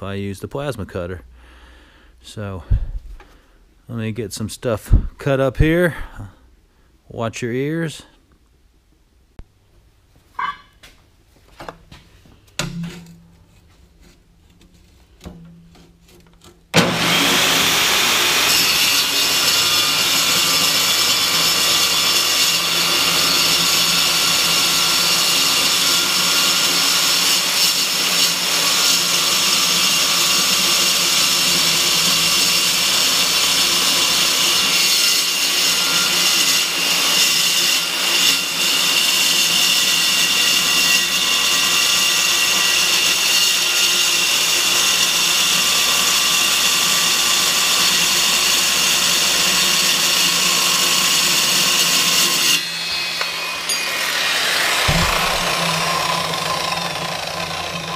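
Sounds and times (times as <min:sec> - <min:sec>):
circular saw cutting steel: 0:16.8 - 0:57.9.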